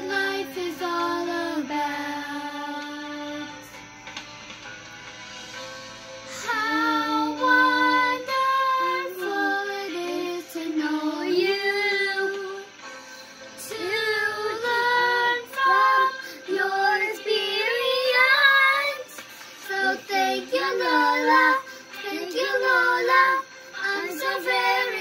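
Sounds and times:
children singing: 0.0s - 3.4s, 6.4s - 12.6s, 13.7s - 25.0s.

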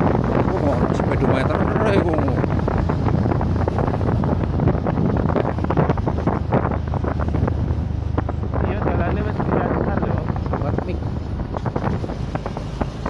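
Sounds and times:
motorcycle rumble: 0.0s - 13.0s
wind buffeting microphone: 0.0s - 13.0s.

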